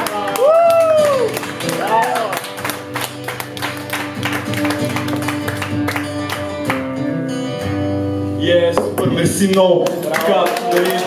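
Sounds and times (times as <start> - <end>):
acoustic guitar strumming: 0.0 - 9.8.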